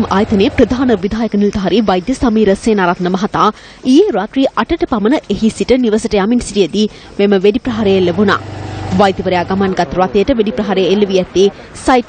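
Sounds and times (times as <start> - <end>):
person speaking: 0.0 - 1.4, 7.5 - 11.1
steady low hum: 0.0 - 5.2, 6.8 - 10.4.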